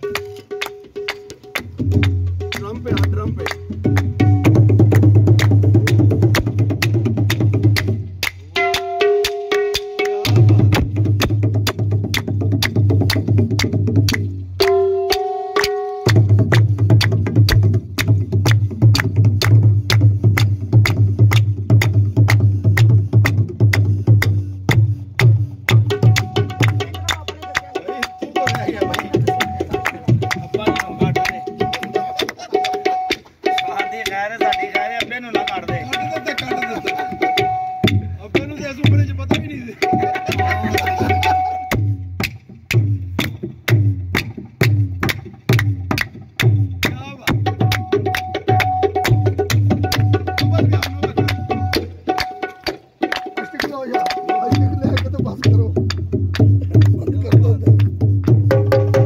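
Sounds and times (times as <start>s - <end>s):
tabla played by hand: 0.0s - 59.0s.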